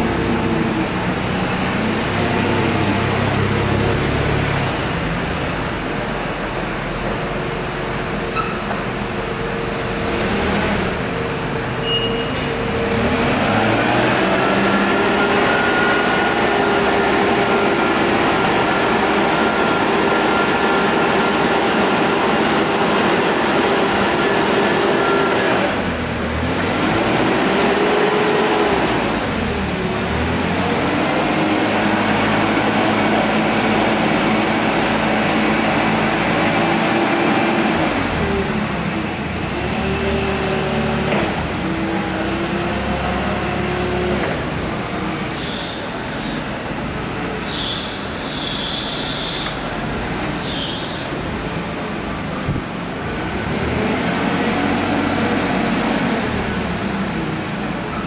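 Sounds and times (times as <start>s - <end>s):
forklift engine running: 0.0s - 58.0s
hydraulic whine: 47.4s - 51.4s.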